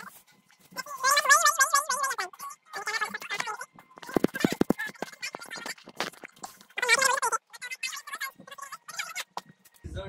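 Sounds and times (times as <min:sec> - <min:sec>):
high wavering cry: 0:00.0 - 0:05.8.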